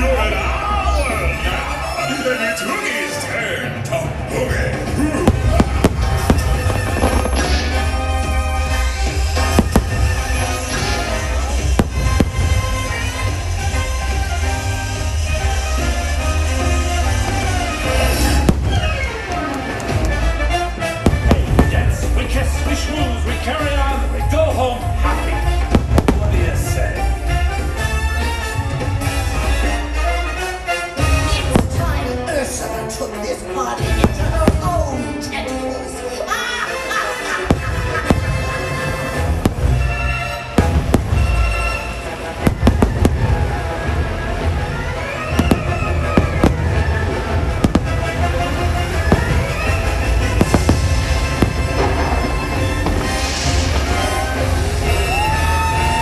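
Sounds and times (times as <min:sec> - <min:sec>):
loud music: 0:00.0 - 0:56.0
fireworks bangs: 0:04.8 - 0:23.8, 0:25.3 - 0:28.9, 0:31.2 - 0:32.3, 0:33.8 - 0:35.1, 0:37.4 - 0:56.0.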